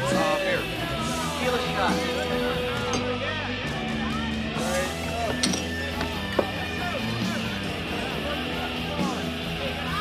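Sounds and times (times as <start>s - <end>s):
guitar rock music: 0.0s - 10.0s
murmur of crowd chatter: 0.0s - 10.0s.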